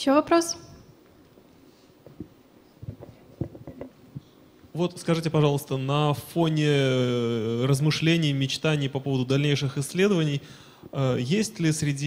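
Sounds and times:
microphone handling thumps and rustles: 2.0s - 4.4s.

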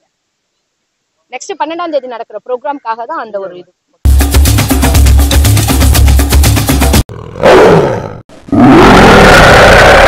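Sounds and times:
music with steady beat: 4.1s - 7.0s
tiger roaring: 7.1s - 10.0s.

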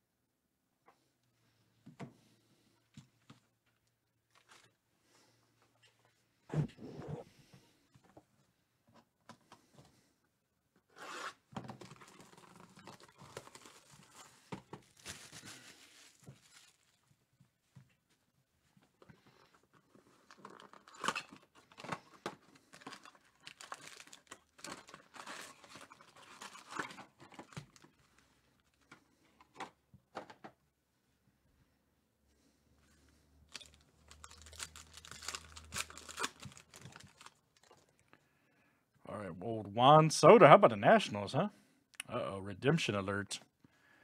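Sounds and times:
cardboard and foil packs handled: 4.3s - 4.8s, 11.6s - 17.3s, 19.1s - 29.8s, 33.5s - 38.0s
plastic wrap tearing and crinkling: 11.0s - 17.1s, 20.2s - 28.8s, 33.5s - 38.0s.

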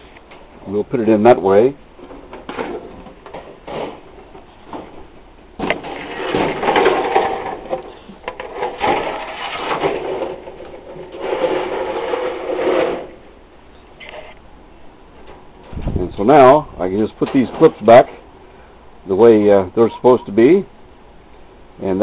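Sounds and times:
wooden box scraping against cage: 5.6s - 13.2s.

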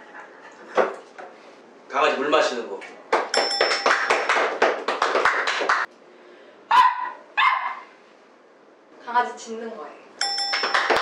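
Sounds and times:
man imitating dog barks: 6.7s - 7.8s.

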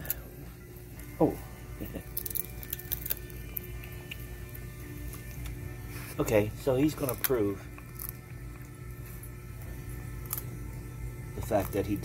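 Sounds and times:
dog cracking peanut shell: 2.0s - 4.3s, 6.9s - 8.8s.

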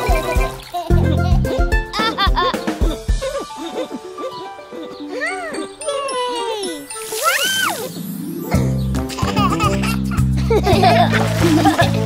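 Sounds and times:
upbeat children's song: 0.0s - 3.9s
cartoon voices giggling: 0.0s - 6.8s, 8.6s - 12.0s
tinkly chimes: 3.6s - 8.9s.

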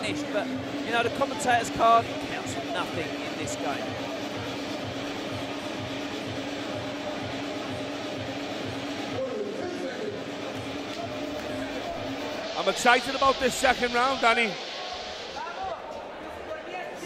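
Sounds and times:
background music with steady beat: 0.0s - 16.2s.

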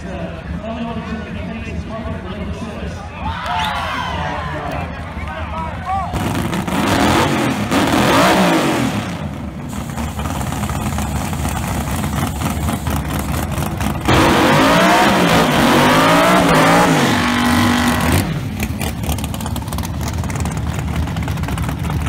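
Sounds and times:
drag car engine revving: 6.1s - 22.0s.

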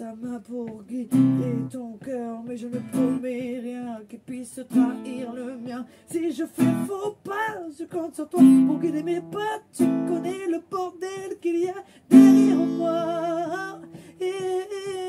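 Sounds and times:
person singing slow song: 0.0s - 15.0s
acoustic guitar strummed: 0.6s - 15.0s.

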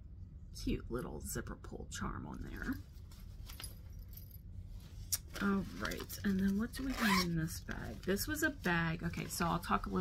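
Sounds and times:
zipper pull and charm jingling: 2.6s - 8.4s.

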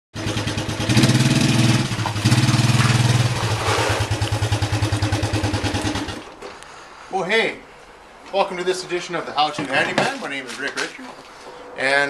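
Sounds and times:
engine revving and idling: 0.2s - 6.3s.

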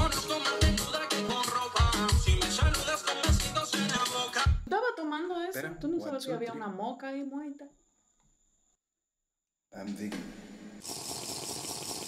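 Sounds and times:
person slurping a drink: 10.8s - 12.0s.

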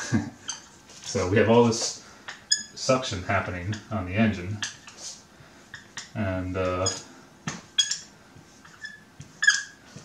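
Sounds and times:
marker squeaking on whiteboard: 0.4s - 10.0s.

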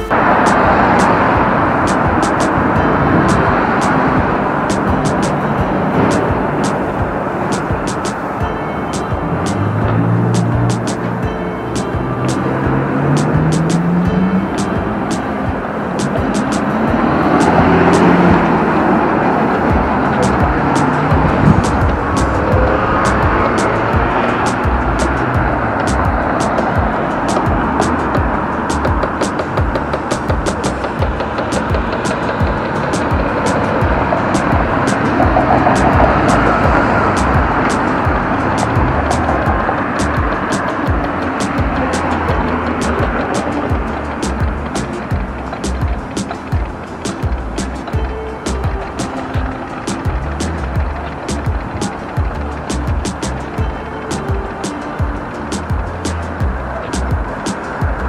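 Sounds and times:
background music with steady beat: 0.0s - 58.0s
cars passing: 0.0s - 58.0s
low engine rising in pitch: 0.0s - 58.0s.

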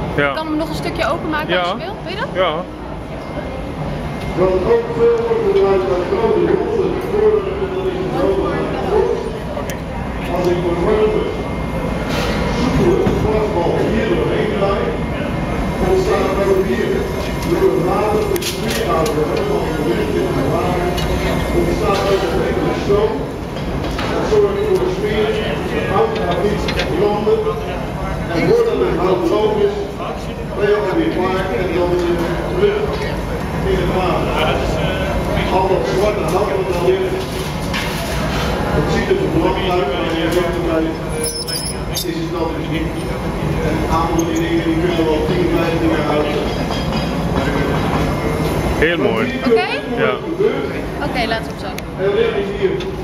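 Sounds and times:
gas furnace roaring: 0.0s - 53.0s
people talking: 0.2s - 2.6s, 3.2s - 23.3s, 24.0s - 37.4s, 38.0s - 41.3s, 41.9s - 53.0s
voices talking: 38.6s - 53.0s.

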